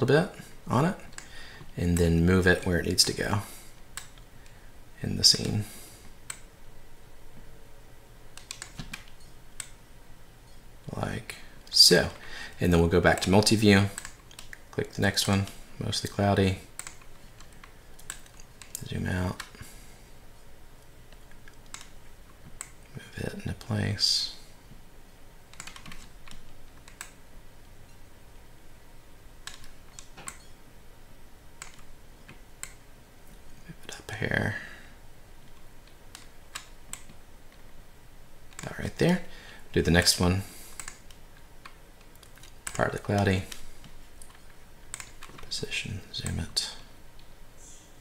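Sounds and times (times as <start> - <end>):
faint low room hum: 0.0 - 48.0
computer mouse clicking: 3.9 - 4.3, 6.2 - 6.5, 8.4 - 9.8, 13.1 - 15.4, 16.7 - 19.6, 20.8 - 22.8, 25.5 - 27.2, 29.4 - 30.5, 31.6 - 32.8, 35.4 - 37.6, 38.5 - 38.7, 40.7 - 45.5.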